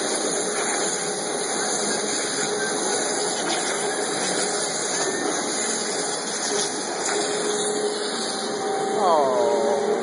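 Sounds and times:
machinery hum tone: 0:00.0 - 0:10.0
shop machinery hissing rush: 0:00.0 - 0:10.0.

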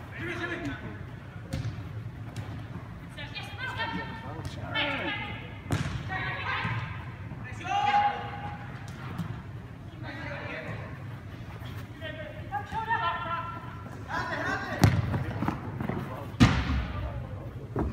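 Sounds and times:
kicked ball thuds: 0:01.5 - 0:01.8, 0:05.7 - 0:06.1, 0:14.8 - 0:15.3
players shouting: 0:06.1 - 0:08.7.

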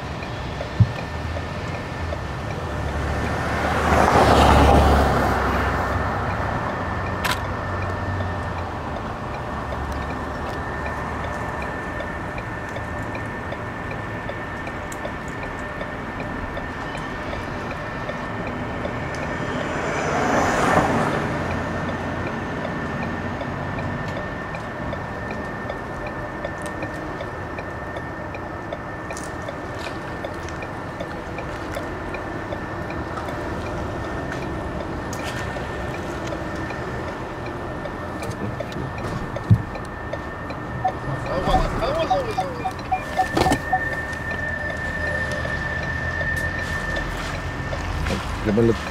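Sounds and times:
road noise inside car: 0:00.0 - 0:48.9
vehicle passing: 0:02.3 - 0:12.4, 0:16.6 - 0:24.2, 0:31.0 - 0:48.9
thin steady whine: 0:05.4 - 0:48.9.

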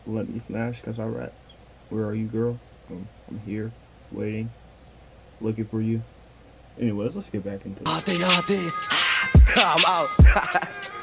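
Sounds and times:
man rapping over a beat: 0:07.9 - 0:10.9.

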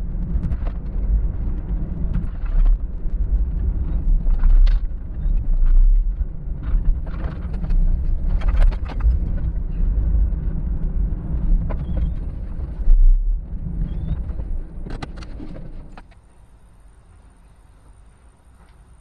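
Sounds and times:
road and engine rumble: 0:00.0 - 0:19.0.

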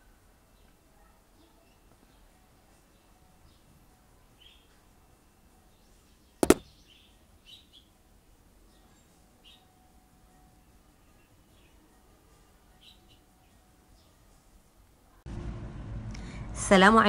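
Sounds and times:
sharp double knock: 0:06.4 - 0:06.7.

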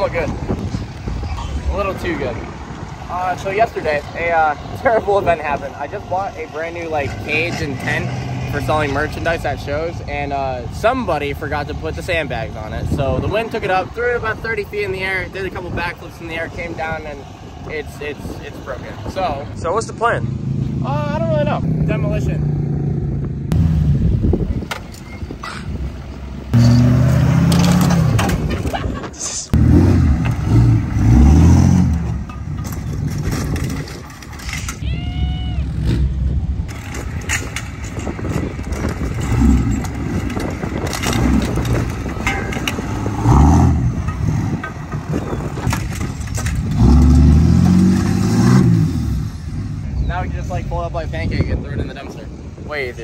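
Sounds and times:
truck engines revving: 0:00.0 - 0:52.7
metal tubing crunching and rattling: 0:31.1 - 0:34.8, 0:36.7 - 0:48.2.

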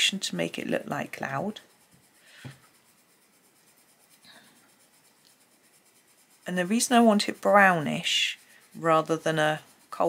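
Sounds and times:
pencil scratching on paper: 0:00.0 - 0:10.0.

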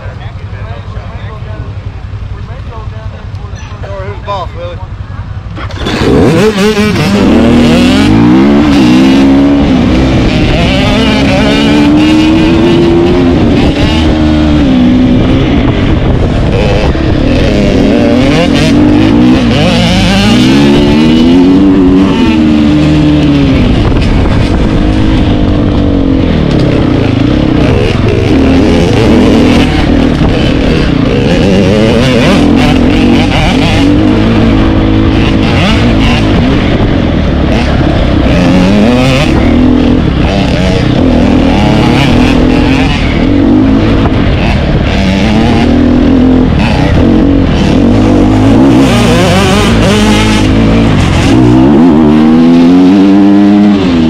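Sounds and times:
dirt bike engine revving: 0:04.8 - 0:54.0.

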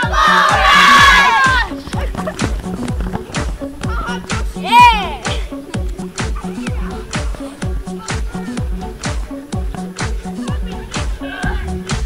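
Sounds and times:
children yelling and screaming: 0:00.0 - 0:02.1, 0:03.8 - 0:05.5
dance music with drum beat: 0:00.0 - 0:12.0.

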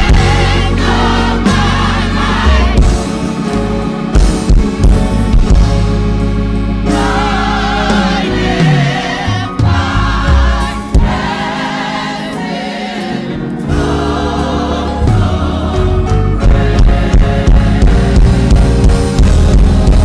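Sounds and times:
gospel choir singing: 0:00.0 - 0:05.3, 0:06.4 - 0:20.0
low bass accompaniment: 0:00.0 - 0:11.3, 0:13.6 - 0:20.0.

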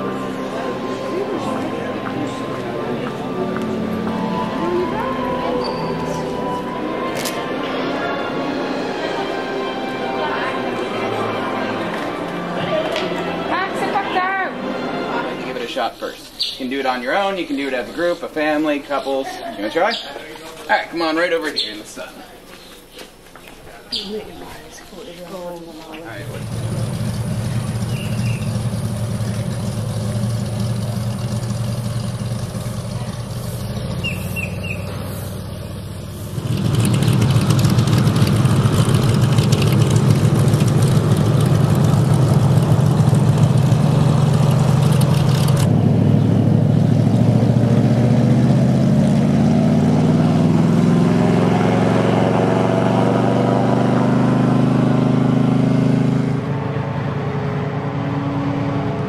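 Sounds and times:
airboat engine drone: 0:00.0 - 0:15.4, 0:26.2 - 0:59.0.

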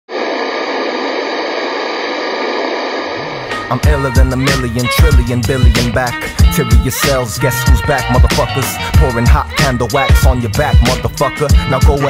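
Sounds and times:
static hiss: 0:00.1 - 0:03.6
hip-hop beat: 0:03.2 - 0:12.0
person rapping: 0:03.2 - 0:12.0.

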